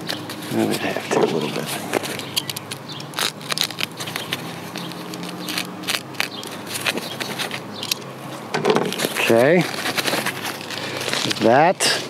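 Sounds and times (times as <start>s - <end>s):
cardboard crackling and scraping: 0.0s - 12.0s
sharp clicks: 2.0s - 8.1s.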